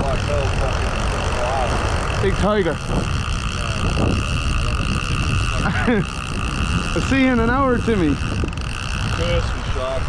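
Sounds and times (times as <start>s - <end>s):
fishing reel drag screaming: 0.0s - 10.0s
wind rumble on microphone: 0.0s - 10.0s.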